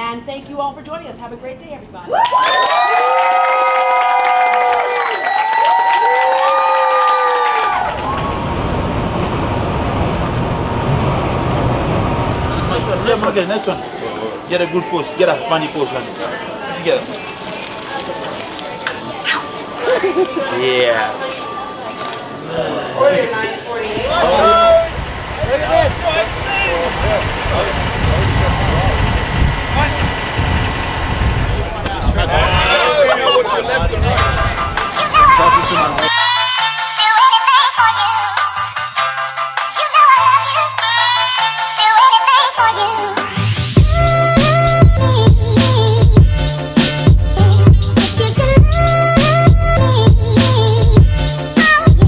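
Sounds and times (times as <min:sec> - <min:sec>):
people whooping: 0:02.0 - 0:08.8, 0:23.0 - 0:27.7
bus road noise from inside: 0:07.6 - 0:14.4, 0:21.6 - 0:34.2
steady low rumble: 0:07.9 - 0:13.2, 0:23.9 - 0:32.7
faint voices talking: 0:12.5 - 0:30.4, 0:31.3 - 0:36.3.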